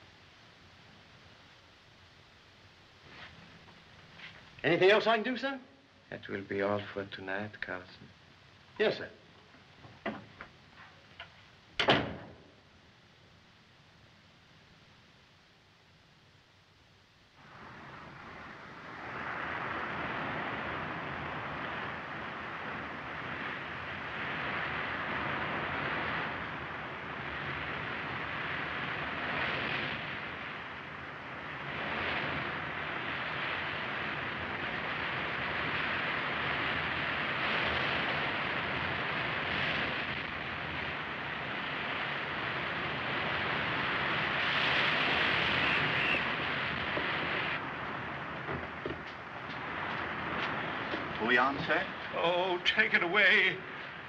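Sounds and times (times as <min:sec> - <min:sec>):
wind: 0:00.0 - 0:54.0
heavy sea rushing against ship: 0:17.4 - 0:54.0.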